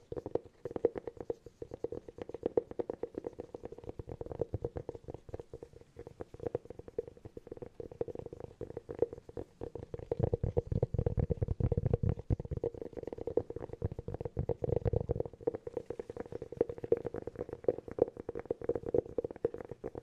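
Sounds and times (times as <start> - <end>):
fingertips tapping on hollow cork: 0.0 - 20.0.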